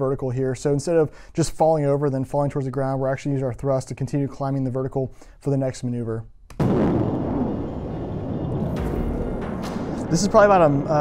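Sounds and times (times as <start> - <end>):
jet engines roaring: 7.4 - 11.0.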